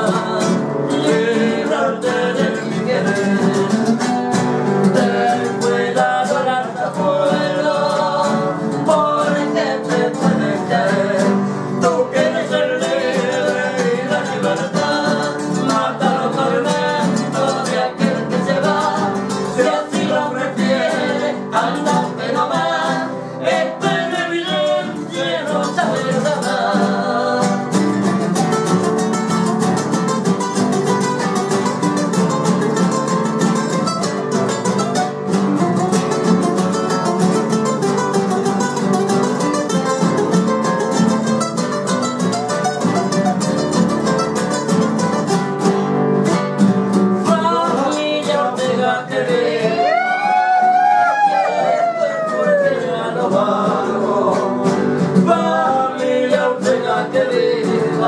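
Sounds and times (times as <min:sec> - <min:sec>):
men singing in harmony: 0:00.0 - 0:04.2, 0:04.8 - 0:28.0, 0:47.2 - 0:58.0
acoustic guitars strumming: 0:00.0 - 0:58.0.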